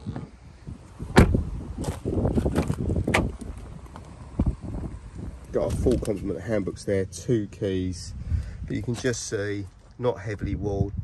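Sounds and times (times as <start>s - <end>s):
car door shutting thud: 1.1s - 3.5s.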